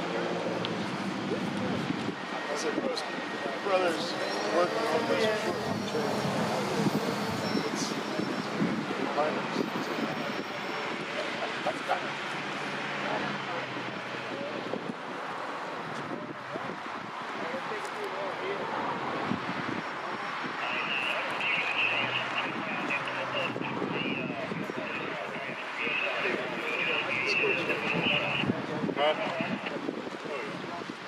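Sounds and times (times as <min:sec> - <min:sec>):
road traffic: 0:00.0 - 0:31.0
people talking: 0:02.5 - 0:08.4, 0:09.0 - 0:12.1, 0:20.6 - 0:30.9.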